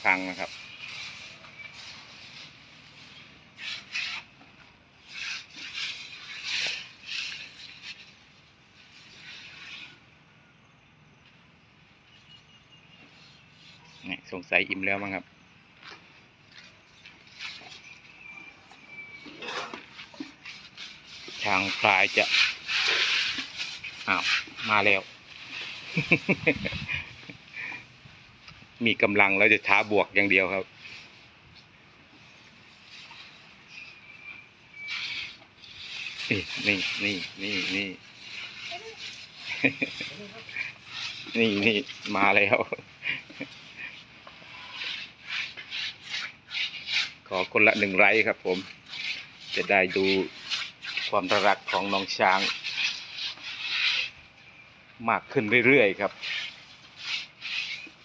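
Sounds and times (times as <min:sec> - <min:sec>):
elephants rustling grass: 0:00.0 - 0:04.4, 0:05.0 - 0:10.0, 0:16.5 - 0:54.9, 0:55.6 - 0:58.0.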